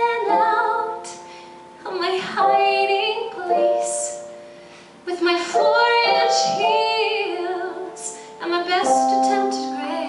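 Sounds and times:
woman singing into a microphone: 0.0 - 4.4, 5.0 - 10.0.

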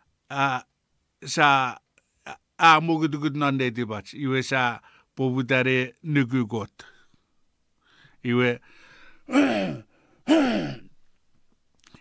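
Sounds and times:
man coughing: 9.3 - 10.9.

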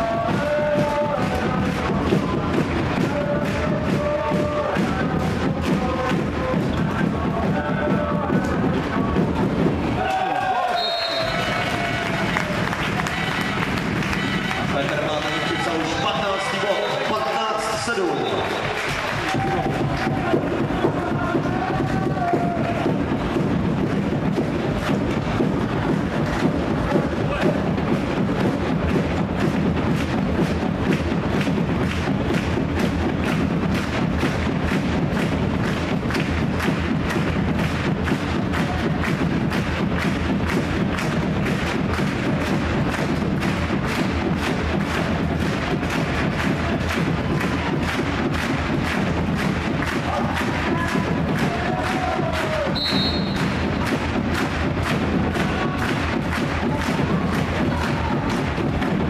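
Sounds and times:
drums beaten in fast rhythm: 0.0 - 59.0.

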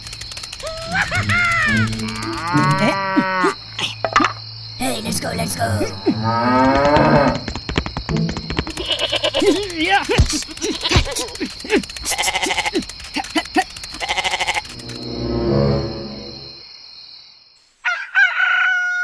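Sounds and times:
goat bleating: 0.8 - 3.6, 8.7 - 14.8
cow mooing: 1.0 - 3.7, 5.9 - 7.4.

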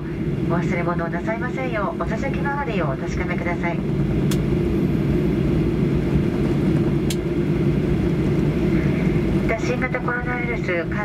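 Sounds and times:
airliner cabin rumble: 0.0 - 11.0.

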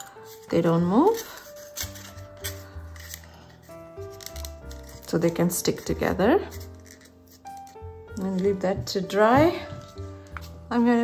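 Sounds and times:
soft background music: 0.0 - 11.0
metal binder clips clicking: 4.1 - 5.2.

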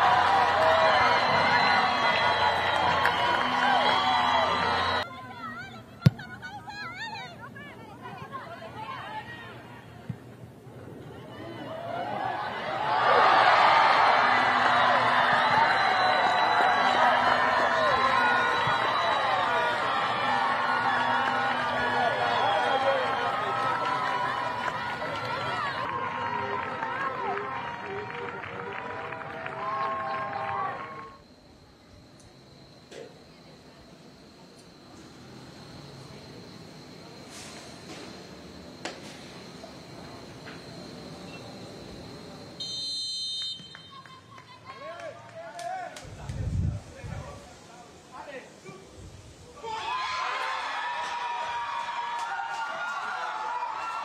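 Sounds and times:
players shouting: 0.0 - 7.4, 11.5 - 31.1
referee's whistle blast: 42.6 - 44.0.

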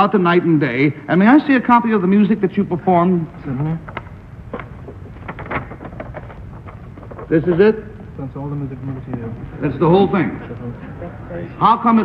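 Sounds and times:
low hum and hiss: 0.0 - 12.0
paper rustling: 3.8 - 9.5.

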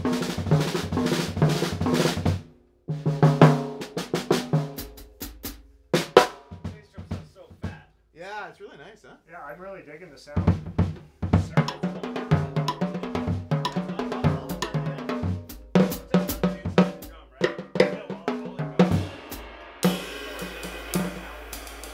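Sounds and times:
drum kit played with sticks: 0.0 - 8.0, 10.3 - 21.9
cymbal crash ringing: 18.9 - 21.9.

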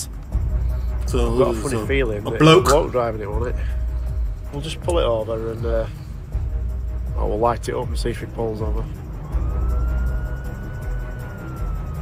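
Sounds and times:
low background music: 0.0 - 12.0
police siren wailing: 8.6 - 12.0.

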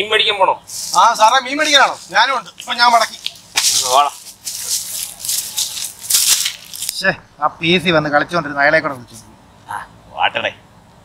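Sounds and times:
footsteps on dry leaves: 0.7 - 7.0.

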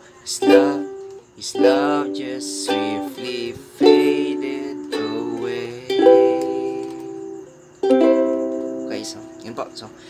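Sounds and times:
ukulele chords strummed: 0.3 - 9.9.

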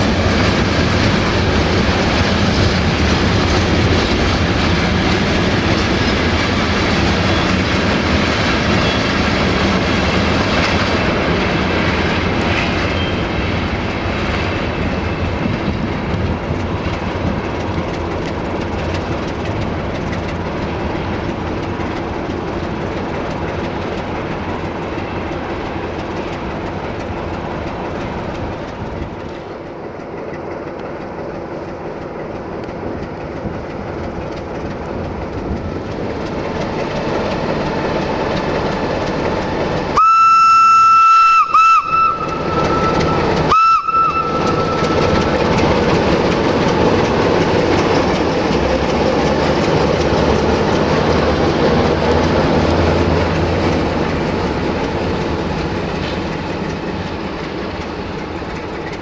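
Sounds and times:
diesel locomotive engine: 0.0 - 59.0
locomotive horn blasts: 40.0 - 45.1.

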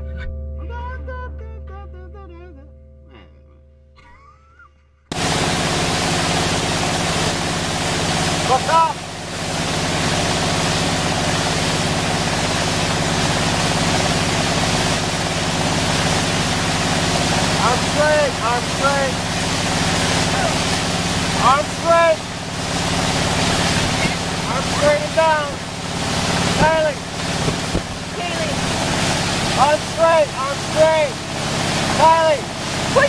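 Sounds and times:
boat engine hum: 0.0 - 33.0
rushing wind and spray: 18.6 - 33.0.

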